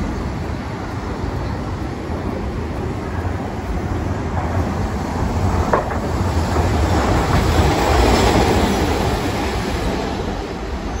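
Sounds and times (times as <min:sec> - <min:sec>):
streetcar running past: 0:00.0 - 0:11.0.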